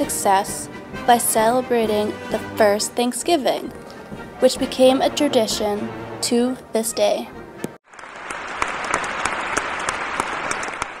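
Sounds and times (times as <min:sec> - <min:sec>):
audience applause: 0:07.9 - 0:11.0.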